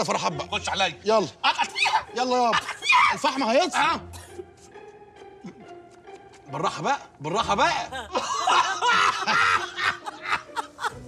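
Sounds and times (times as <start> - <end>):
man and woman laughing: 1.3 - 3.4, 7.5 - 11.0.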